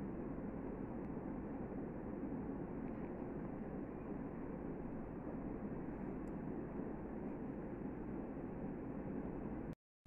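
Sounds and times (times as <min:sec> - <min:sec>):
low background rumble: 0:00.0 - 0:09.8.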